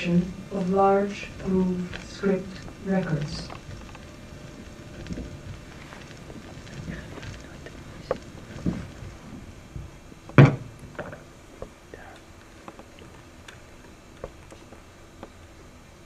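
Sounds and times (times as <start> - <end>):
loud pitched thump: 9.8 - 11.2.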